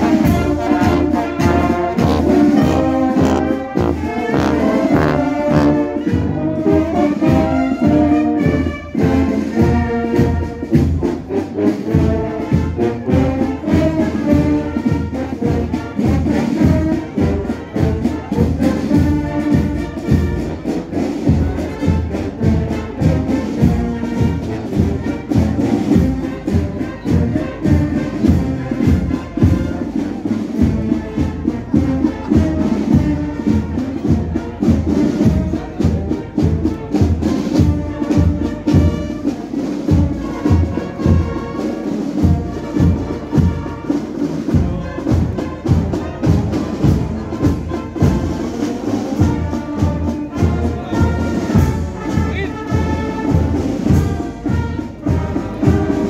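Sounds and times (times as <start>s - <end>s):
brass band playing a march: 0.0s - 56.0s
steady drum beat: 0.0s - 56.0s.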